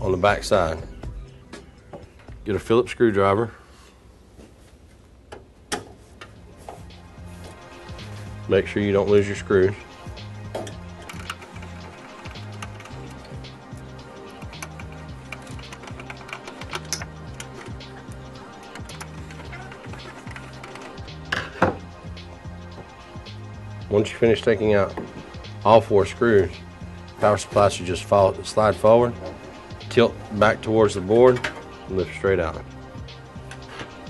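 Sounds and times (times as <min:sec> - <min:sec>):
background music: 0:00.0 - 0:04.1, 0:05.2 - 0:34.0.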